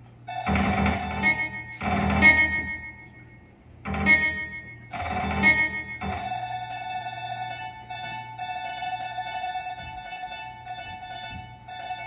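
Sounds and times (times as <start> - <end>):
held synthesizer tone: 0.3 - 12.0
synthesizer chord clusters: 0.3 - 12.0.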